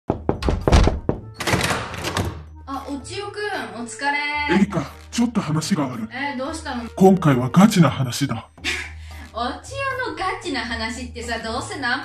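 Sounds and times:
hard knocks: 0.1s - 1.4s.

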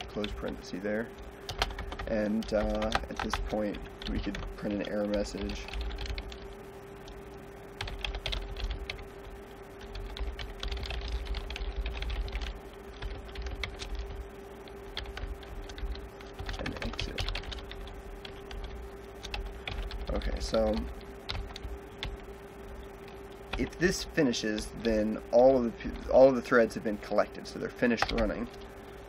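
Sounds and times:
steady low hum: 0.0s - 29.0s
typing on computer keyboard: 1.5s - 6.4s, 7.8s - 9.0s, 9.8s - 14.2s, 14.9s - 22.2s, 28.0s - 28.6s.

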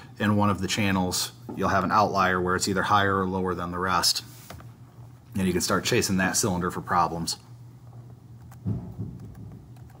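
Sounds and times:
low steady hum: 0.0s - 10.0s
soft low thumps: 8.1s - 10.0s
computer mouse and keyboard clicks: 8.4s - 8.6s, 9.2s - 10.0s.

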